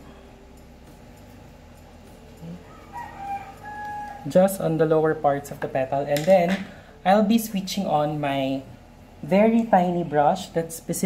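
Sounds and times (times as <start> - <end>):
rooster crowing: 2.6 - 4.4.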